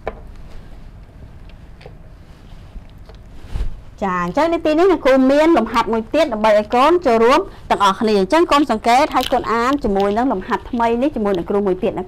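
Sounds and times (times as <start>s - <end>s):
room noise: 0.0s - 12.0s
microphone handling rumble: 2.1s - 4.4s.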